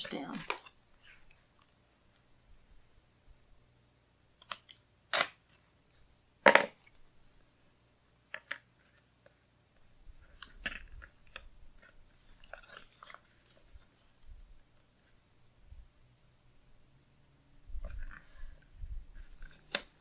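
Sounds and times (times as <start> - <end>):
tape peeling with crinkling: 10.2 - 14.3, 19.1 - 20.0.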